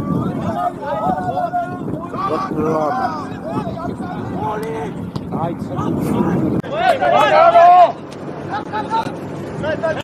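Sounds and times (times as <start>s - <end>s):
players calling out: 0.0s - 5.0s
wind on microphone: 0.0s - 6.8s.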